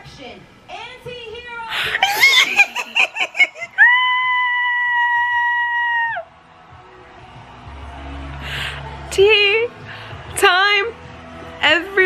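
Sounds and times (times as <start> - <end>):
woman laughing squeals: 2.0 - 6.1
woman screaming with delight: 3.6 - 6.3.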